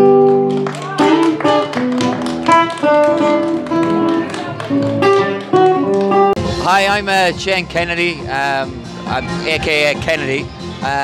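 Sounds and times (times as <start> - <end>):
people clapping along: 0.0 - 6.4
acoustic guitar picked notes: 0.0 - 11.0.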